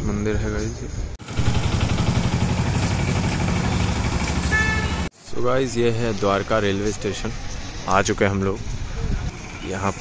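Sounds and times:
small engine running: 0:01.2 - 0:05.1.

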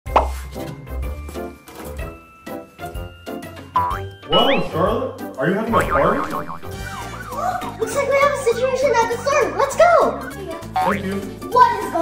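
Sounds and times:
bouncy children's music: 0:02.2 - 0:04.9, 0:05.8 - 0:12.0
cartoon plop sound effect: 0:04.3 - 0:04.8, 0:05.8 - 0:07.8.

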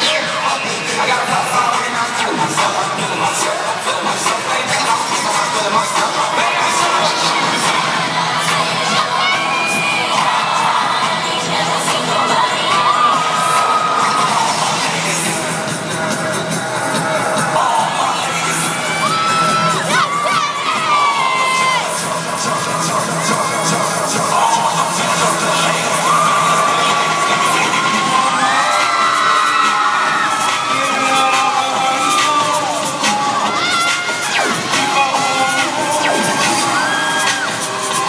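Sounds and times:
crowd cheering and screaming: 0:00.0 - 0:15.6, 0:16.4 - 0:38.0.

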